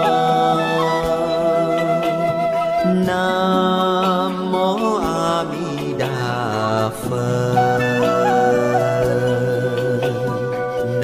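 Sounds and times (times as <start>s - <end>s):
slow devotional chant melody: 0.0s - 11.0s.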